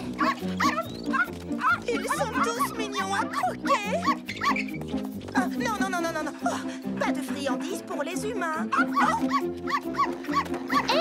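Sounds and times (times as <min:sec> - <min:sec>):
cartoon puppies yipping: 0:00.0 - 0:05.1, 0:08.6 - 0:11.0
background music: 0:00.0 - 0:11.0.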